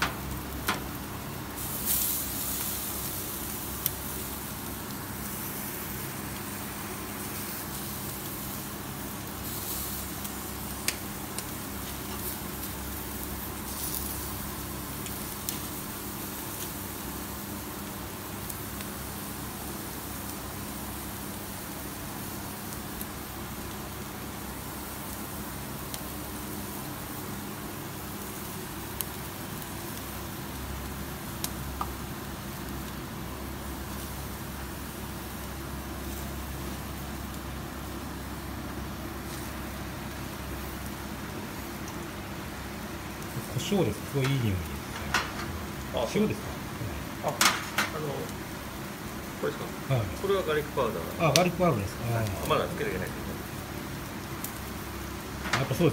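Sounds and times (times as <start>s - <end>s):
faint pops and crackles: 0.0s - 1.0s
hiss and hum of burners and fan: 0.0s - 55.9s.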